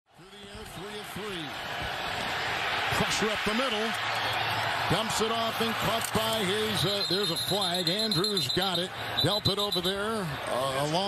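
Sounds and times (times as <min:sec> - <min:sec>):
stadium crowd noise: 0:00.1 - 0:11.0.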